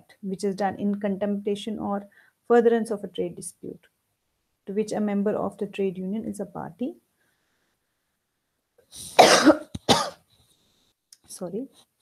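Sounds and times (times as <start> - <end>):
woman coughing: 9.1 - 10.2.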